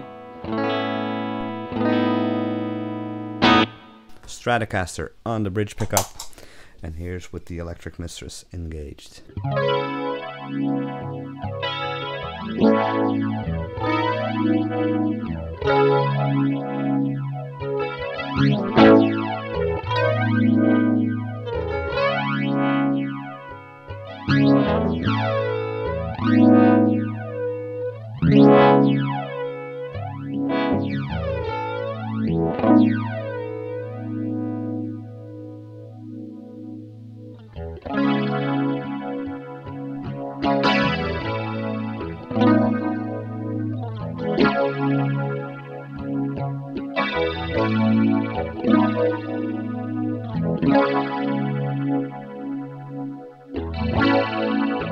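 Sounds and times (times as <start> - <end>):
electric guitar strummed with flanger: 0.0 - 4.2, 9.3 - 54.9.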